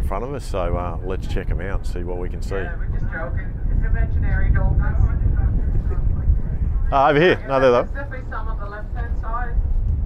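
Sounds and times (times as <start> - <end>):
boat engine rumble: 0.0 - 10.0
wind on microphone: 0.0 - 10.0
faint voices talking: 0.1 - 9.7.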